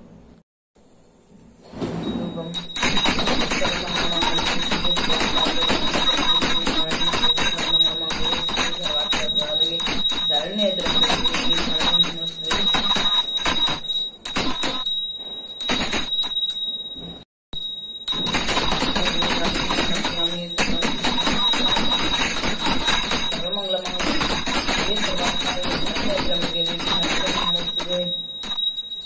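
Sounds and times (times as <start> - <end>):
hand bell ringing rapidly: 2.6 - 16.9, 17.6 - 29.0
woman chanting: 2.9 - 13.6, 19.2 - 28.2.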